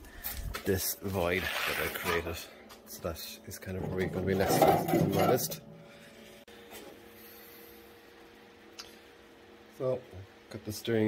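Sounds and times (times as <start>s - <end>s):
steady low hum: 2.2s - 11.0s.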